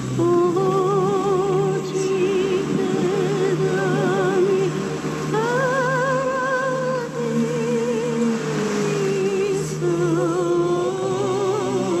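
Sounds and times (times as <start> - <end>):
low drone: 0.0 - 12.0
solo voice singing held notes: 0.0 - 12.0.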